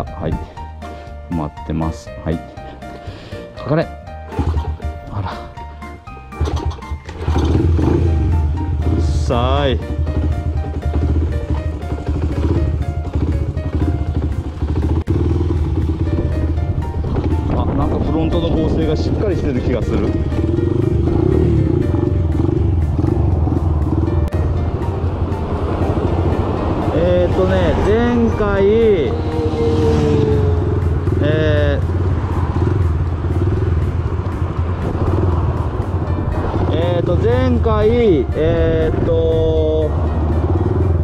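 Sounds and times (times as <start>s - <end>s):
background music: 0.0s - 41.0s
motorcycle engine running: 6.3s - 41.0s.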